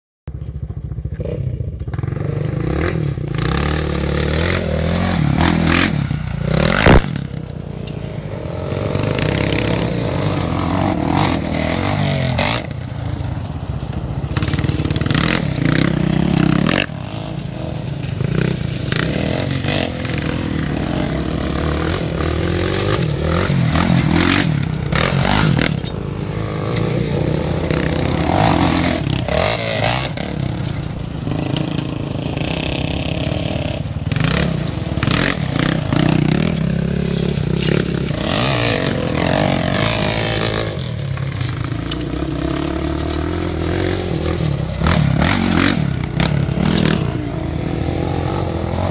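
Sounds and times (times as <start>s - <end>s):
quad bike engines revving: 0.3s - 48.9s
quad bike landing thump: 6.7s - 7.3s
tyres scraping over gravel: 8.2s - 48.9s.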